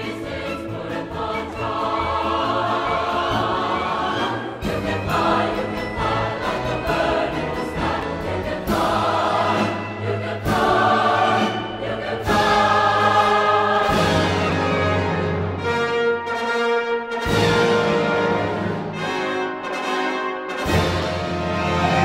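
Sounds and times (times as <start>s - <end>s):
choir singing sustained chords: 0.0s - 15.7s.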